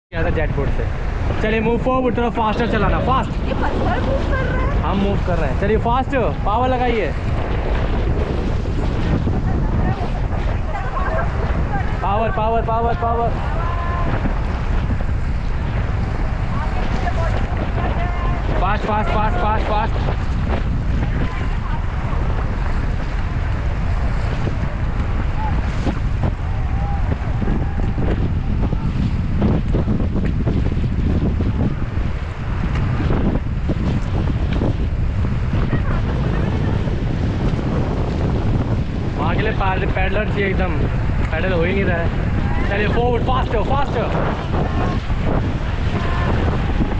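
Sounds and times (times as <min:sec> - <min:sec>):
rushing river water: 0:00.1 - 0:46.9
wind buffeting microphone: 0:00.1 - 0:46.9
paddling: 0:00.8 - 0:39.2.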